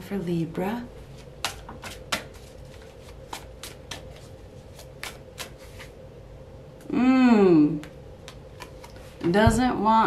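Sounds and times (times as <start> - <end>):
cards being shuffled: 1.1 - 6.0.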